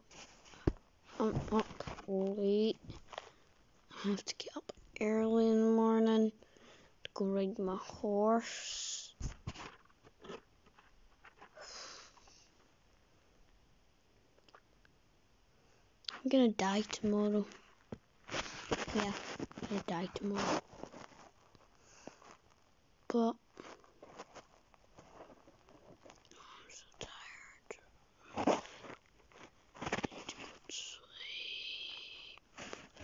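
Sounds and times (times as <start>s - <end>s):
girl whispering: 1.1s - 2.8s, 3.9s - 6.4s, 7.1s - 9.2s, 18.9s - 20.6s, 23.1s - 23.4s, 26.3s - 27.9s, 30.0s - 32.4s
soft breathy hiss: 6.1s - 9.5s, 11.5s - 12.7s, 15.5s - 22.5s, 26.0s - 29.0s, 29.7s - 33.0s.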